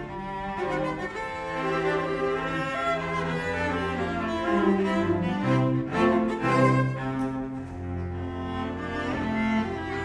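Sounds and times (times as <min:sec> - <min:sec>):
cellos playing sustained chords: 0:00.0 - 0:10.0.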